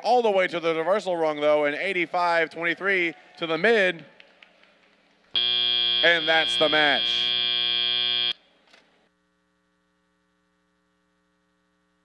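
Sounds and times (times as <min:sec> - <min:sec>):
buzzer steady bright tone: 0:05.4 - 0:08.4.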